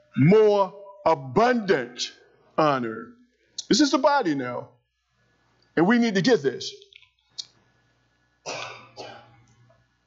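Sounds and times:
person coughing: 8.5s - 9.4s.

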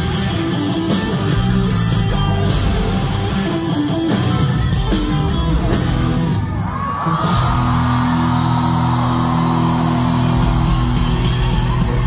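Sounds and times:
heavy rock band playing live: 0.0s - 12.0s
crowd yelling: 5.5s - 12.0s.

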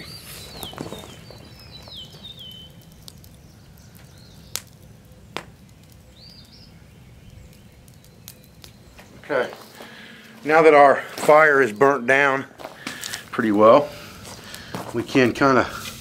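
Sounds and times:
small bird chirping: 0.0s - 10.1s
wood fire popping: 0.0s - 16.0s.

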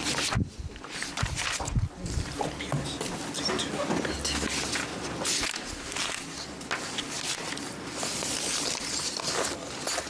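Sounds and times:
rustling: 3.9s - 10.0s.

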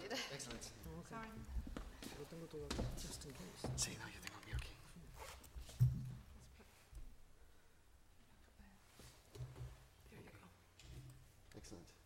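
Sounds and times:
rustling and handling noise: 0.5s - 7.2s.

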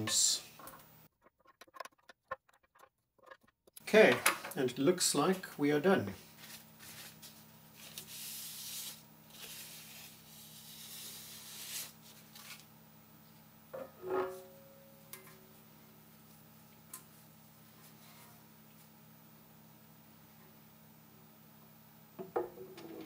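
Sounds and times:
paper towel rubbing hard surface: 6.4s - 12.6s.

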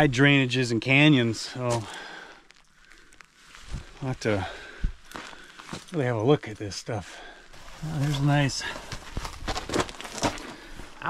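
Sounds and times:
footsteps on rocky ground: 1.7s - 6.1s, 7.5s - 11.0s.

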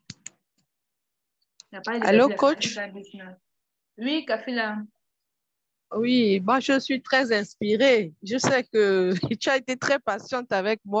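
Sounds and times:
woman speaking: 1.6s - 3.4s, 5.9s - 11.0s.

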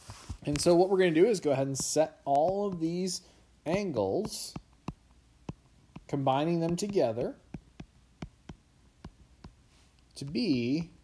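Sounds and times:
low background hum: 0.0s - 11.0s
stylus tapping on glass screen: 1.8s - 3.0s, 3.7s - 9.6s.

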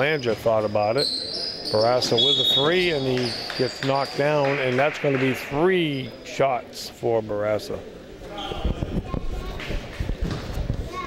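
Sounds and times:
faint echoing voices: 0.0s - 11.0s.

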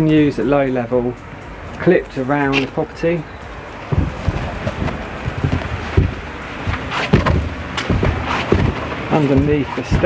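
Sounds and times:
footsteps: 2.5s - 2.8s, 3.5s - 10.0s
wind buffeting microphone: 3.5s - 10.0s
handling thumps: 3.8s - 10.0s.

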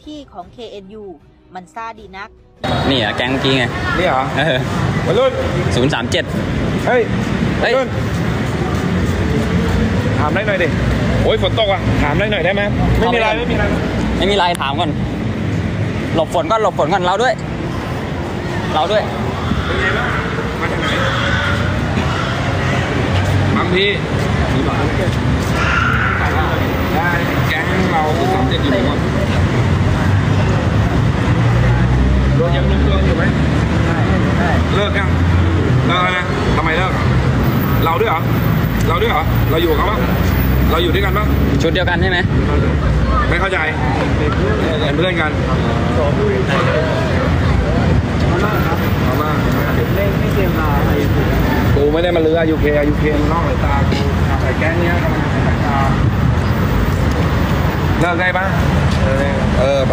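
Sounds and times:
street traffic rumble: 0.0s - 59.9s
scattered voices: 2.6s - 59.9s.

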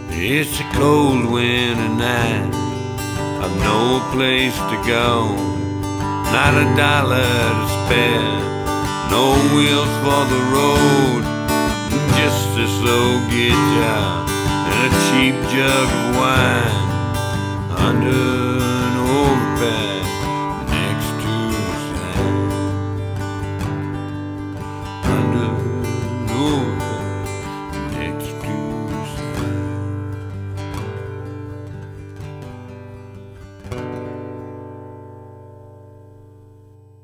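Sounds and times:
acoustic guitar strumming: 0.0s - 37.0s.

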